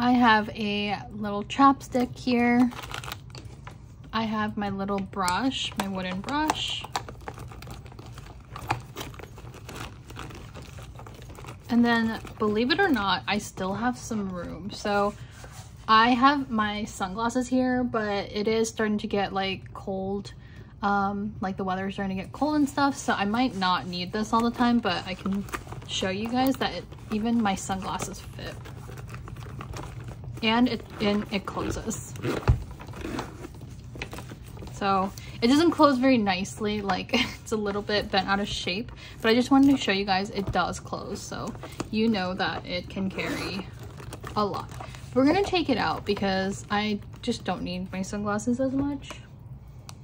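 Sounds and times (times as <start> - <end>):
rustling in a handbag: 1.9 - 16.3, 22.4 - 48.2
handbag zipper closing: 31.0 - 33.5, 43.1 - 43.8.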